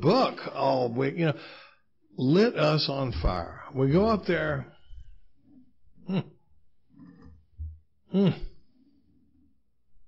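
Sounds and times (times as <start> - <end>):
man humming: 6.0 - 6.4, 8.1 - 8.7.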